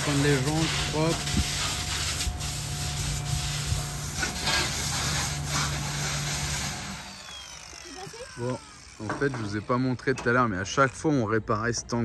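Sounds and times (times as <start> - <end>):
pressure washer spraying water: 0.0 - 9.6
motor hum: 1.1 - 11.1.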